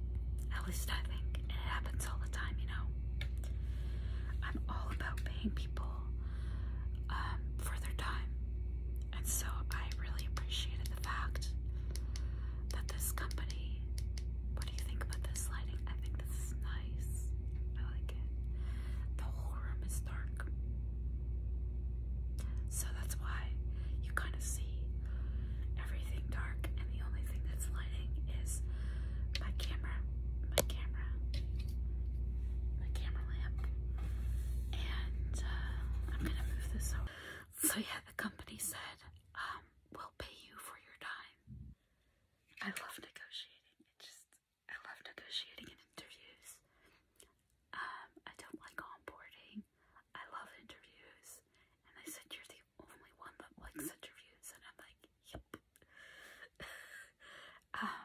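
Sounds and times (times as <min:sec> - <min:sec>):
steady low hum: 0:00.0 - 0:58.0
woman whispering: 0:00.4 - 0:02.9, 0:04.3 - 0:06.2, 0:07.0 - 0:08.4, 0:09.1 - 0:18.3, 0:19.0 - 0:20.5, 0:22.4 - 0:25.2, 0:25.8 - 0:28.7, 0:29.3 - 0:31.4, 0:32.8 - 0:33.7, 0:34.7 - 0:41.4, 0:42.6 - 0:46.6, 0:47.7 - 0:55.7, 0:57.6 - 0:58.0.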